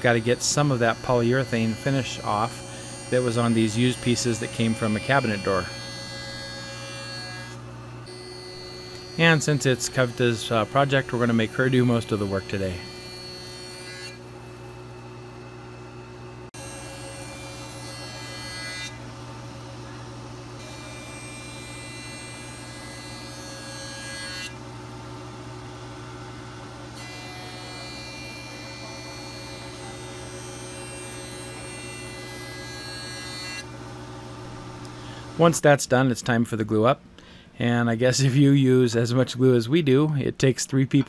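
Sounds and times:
jointer machine hum: 0.0s - 15.9s.

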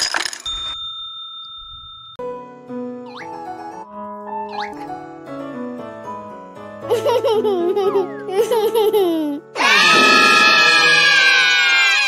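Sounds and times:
high ringing tone: 0.4s - 2.2s.

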